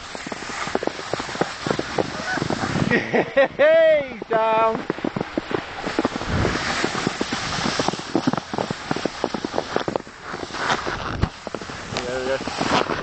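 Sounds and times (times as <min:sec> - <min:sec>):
footsteps crunching in snow: 0:00.0 - 0:13.0
wind buffeting microphone: 0:00.0 - 0:13.0.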